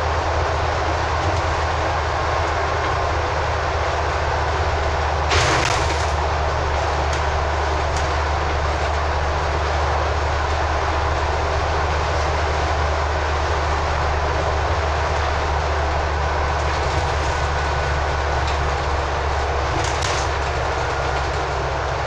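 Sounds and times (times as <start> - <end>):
bus diesel engine drone: 0.0 - 22.0
road and tyre noise: 0.0 - 22.0.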